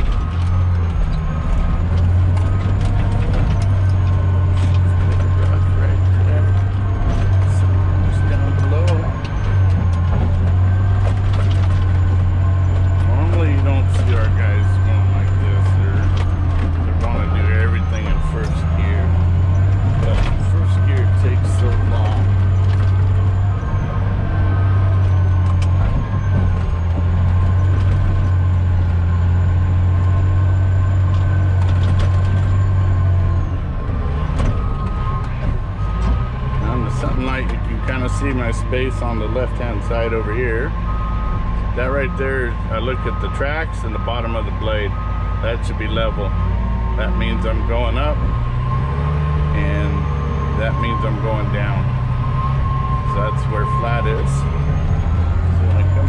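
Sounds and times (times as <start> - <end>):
bulldozer diesel engine droning: 0.0 - 56.0.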